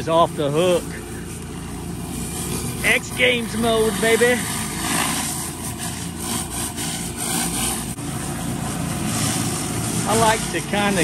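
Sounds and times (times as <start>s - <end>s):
pressure washer engine hum: 0.0s - 11.0s
high-pressure water hiss: 0.5s - 11.0s.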